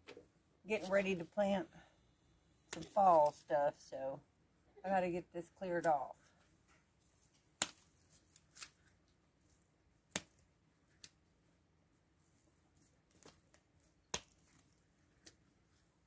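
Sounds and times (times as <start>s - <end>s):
hand snippers cutting stems: 7.6s - 8.8s.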